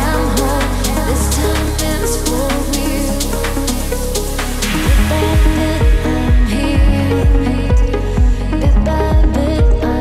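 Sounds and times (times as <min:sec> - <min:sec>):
steady percussion beat: 0:00.0 - 0:09.8
deep bass line: 0:00.0 - 0:10.0
melodic synth lines: 0:00.0 - 0:10.0.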